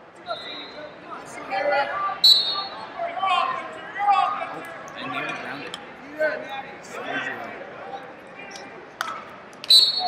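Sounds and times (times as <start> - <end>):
voices shouting in echoing hall: 0.2 - 4.8.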